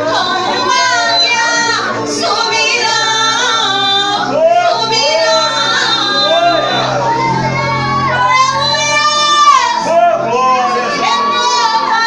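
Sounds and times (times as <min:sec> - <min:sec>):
musical accompaniment: 0:00.0 - 0:12.0
woman singing worship song: 0:00.0 - 0:12.0.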